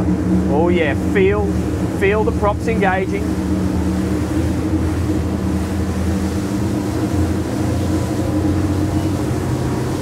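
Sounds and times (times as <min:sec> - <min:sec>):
outboard engines droning: 0:00.0 - 0:10.0
wind and water rushing over hull: 0:00.0 - 0:10.0.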